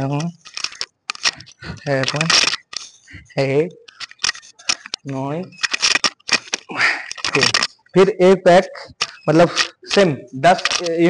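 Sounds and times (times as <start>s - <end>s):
man's voice: 0.0s - 0.4s, 1.2s - 2.5s, 3.1s - 3.8s, 5.0s - 5.6s, 6.7s - 11.0s.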